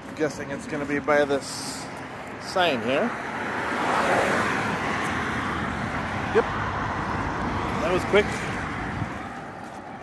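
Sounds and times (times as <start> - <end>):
car passing: 0.2 - 10.0.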